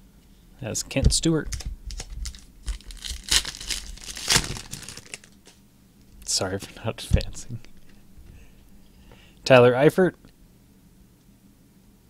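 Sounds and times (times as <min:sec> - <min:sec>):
foil wrapper tearing and crinkling: 0:01.5 - 0:05.6.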